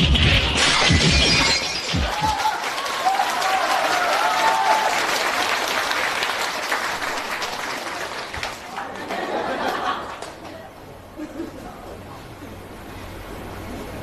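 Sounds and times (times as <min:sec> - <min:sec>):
audience applauding: 0:01.9 - 0:10.6
audience laughing: 0:08.7 - 0:12.6.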